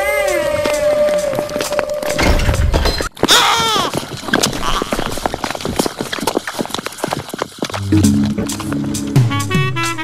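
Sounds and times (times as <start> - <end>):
hard-soled footsteps clattering: 0.1 - 10.0.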